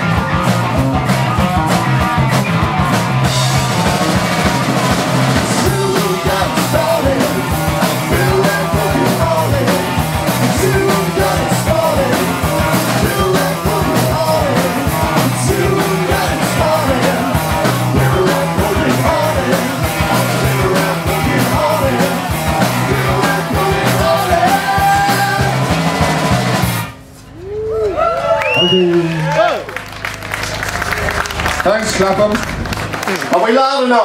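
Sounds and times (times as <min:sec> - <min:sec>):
fast drum kit: 0:00.0 - 0:26.9, 0:30.8 - 0:34.0
distorted electric guitars: 0:00.0 - 0:27.1, 0:30.5 - 0:34.0.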